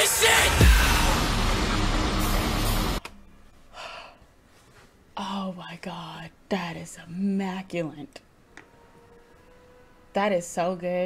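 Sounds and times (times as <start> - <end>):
hip-hop music with heavy bass: 0.0 - 3.0
faint breath: 3.7 - 4.9.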